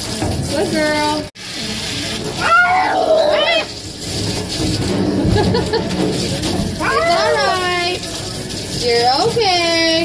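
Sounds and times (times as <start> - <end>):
cat yowling: 2.4 - 3.8, 6.8 - 7.6.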